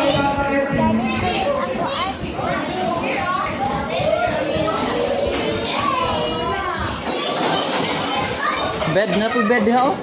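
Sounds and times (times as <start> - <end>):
child's voice: 0.0 - 9.6
children chattering and calling: 0.0 - 10.0.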